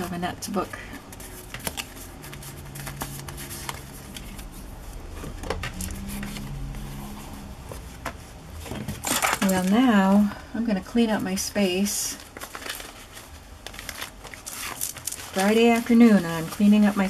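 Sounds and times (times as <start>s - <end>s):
steady low hum: 0.0s - 14.4s
paper rustling and tapping: 1.1s - 6.0s.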